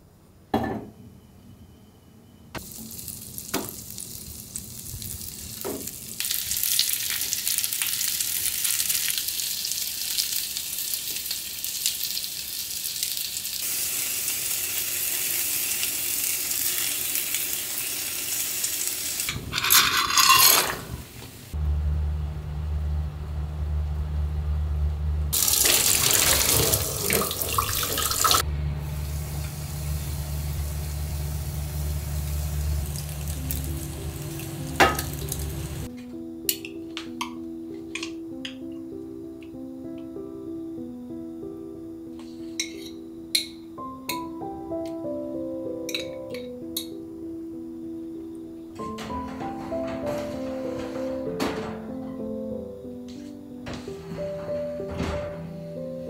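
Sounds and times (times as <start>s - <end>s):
pasta poured into boiling water: 2.6s - 20.8s, 25.4s - 28.4s
food sizzling in a frying pan: 2.6s - 21.6s, 25.3s - 35.9s
steady low hum: 28.4s - 35.9s.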